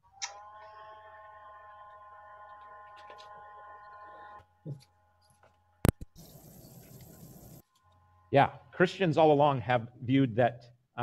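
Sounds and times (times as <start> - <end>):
faint high whine: 5.8 - 7.6.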